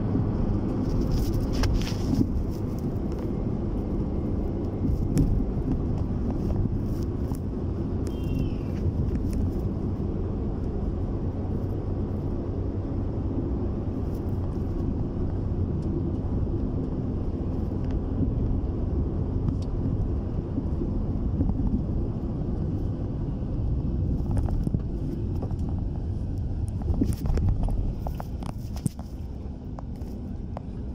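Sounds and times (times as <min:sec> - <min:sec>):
road noise: 0:00.0 - 0:30.9
vehicle engine rumble: 0:00.0 - 0:30.9.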